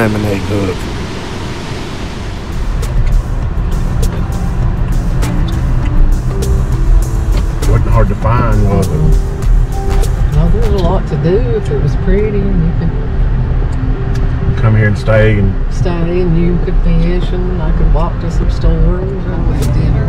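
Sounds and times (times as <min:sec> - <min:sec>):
car driving rumble from inside: 0:00.0 - 0:20.0
music: 0:02.5 - 0:20.0
person speaking: 0:07.7 - 0:09.2.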